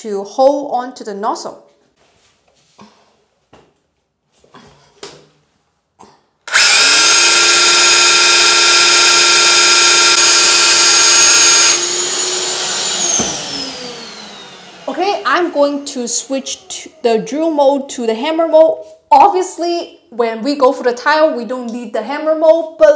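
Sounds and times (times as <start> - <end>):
drill motor whining: 6.5 - 15.0.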